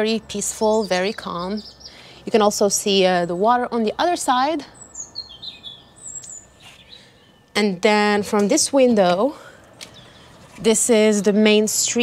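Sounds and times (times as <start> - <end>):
small birds chirping: 0.1 - 12.0.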